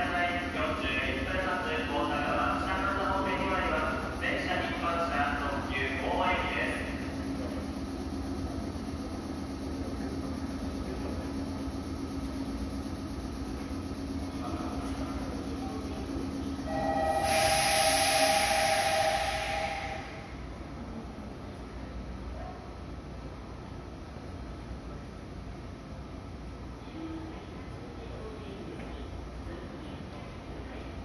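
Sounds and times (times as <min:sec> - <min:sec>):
electric train humming: 0:00.0 - 0:21.6
two-note tone: 0:16.7 - 0:17.4
loud hiss: 0:17.1 - 0:20.4.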